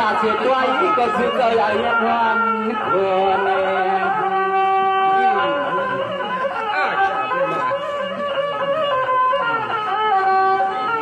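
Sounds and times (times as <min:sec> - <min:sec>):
musical accompaniment: 0:00.0 - 0:11.0
man singing into a microphone: 0:00.2 - 0:04.6.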